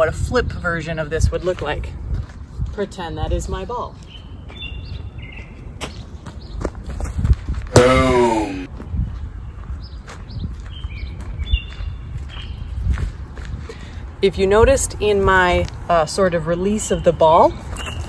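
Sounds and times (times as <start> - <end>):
wind on microphone: 0.0 - 4.1, 6.8 - 15.9
footsteps on grass and dirt: 1.5 - 3.1, 8.7 - 13.7
birds chirping: 3.6 - 7.1, 7.8 - 12.9
loud falling voice-like cry: 7.8 - 8.7.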